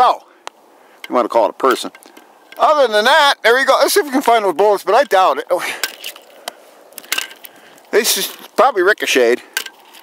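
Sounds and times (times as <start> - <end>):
low hiss: 0.0 - 9.6
footsteps crunching on dry sand: 3.7 - 10.0.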